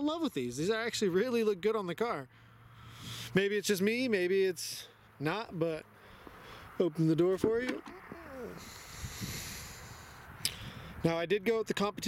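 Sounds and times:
man's falling hoot-like voice: 0:07.8 - 0:08.8.

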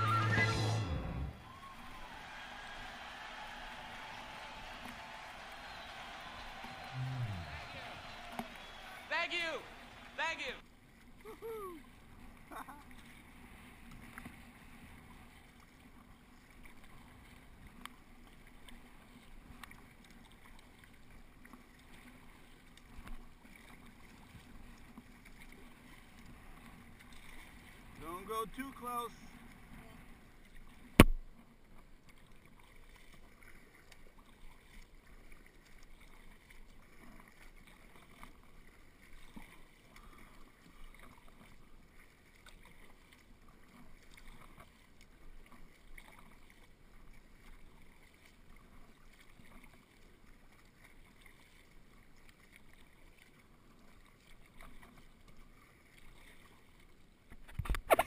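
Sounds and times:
water running along hull: 0:00.0 - 0:58.0
paddle blades dipping in water: 0:01.4 - 0:58.0.

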